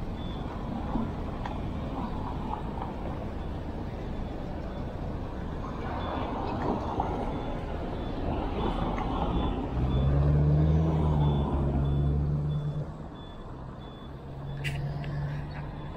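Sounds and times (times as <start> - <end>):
faint high-pitched beeps: 0.0 - 15.9
street traffic: 0.0 - 15.9.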